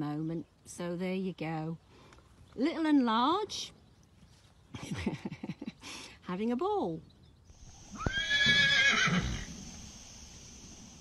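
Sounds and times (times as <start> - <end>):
horse whinnying: 7.9 - 9.5.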